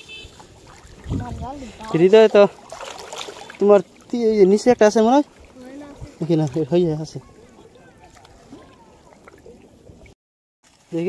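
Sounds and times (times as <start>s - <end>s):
water sloshing: 0.0s - 11.0s
person's voice: 1.1s - 2.5s.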